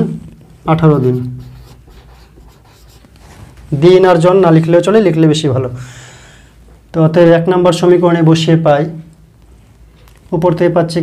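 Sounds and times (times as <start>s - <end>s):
marker scratching on whiteboard: 0.4s - 3.6s.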